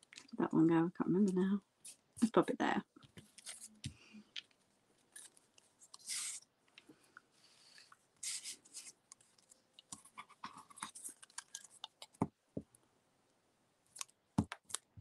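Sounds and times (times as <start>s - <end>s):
paper rustling: 3.0s - 6.4s
glue stick rubbing on paper: 5.8s - 6.4s, 8.2s - 9.0s.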